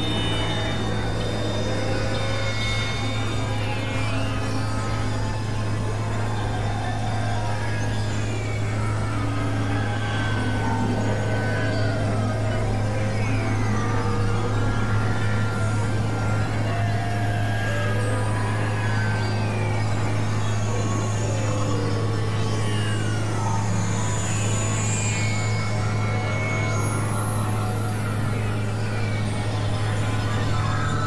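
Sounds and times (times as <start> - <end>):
low drone: 0.0 - 31.0.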